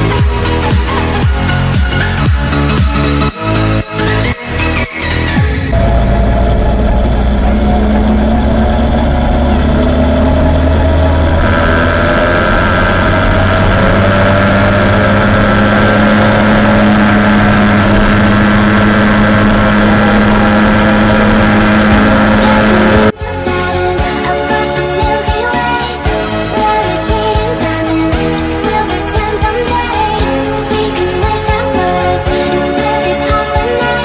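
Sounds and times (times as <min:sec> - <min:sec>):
moped engine running: 0:05.4 - 0:34.0.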